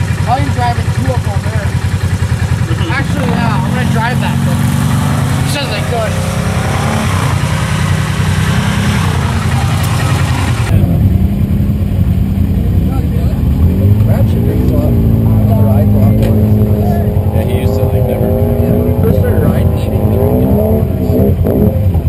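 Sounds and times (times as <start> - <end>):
engine low drone: 0.0 - 22.0.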